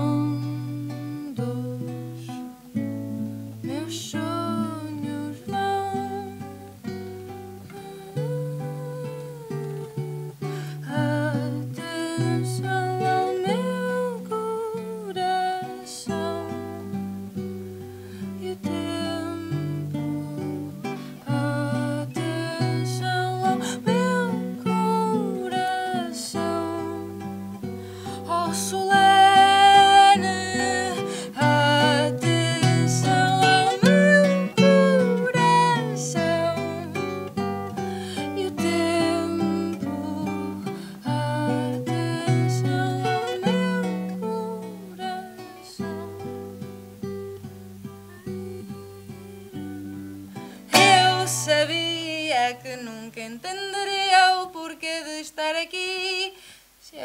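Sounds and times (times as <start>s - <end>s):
plucked and strummed guitars: 0.0s - 54.8s
woman singing: 0.0s - 57.0s.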